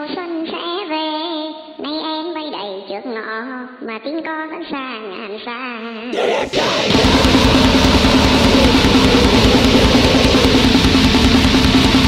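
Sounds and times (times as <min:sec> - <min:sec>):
sampled voice: 0:06.1 - 0:11.6
grindcore band playing: 0:06.2 - 0:12.0.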